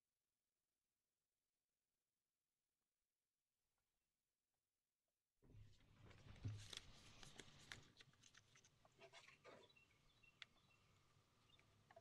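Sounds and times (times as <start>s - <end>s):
soft clicks and rustles: 5.7s - 9.6s.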